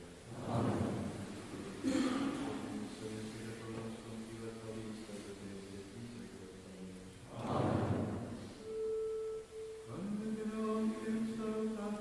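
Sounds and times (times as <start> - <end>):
steady pure note: 7.2 - 12.0.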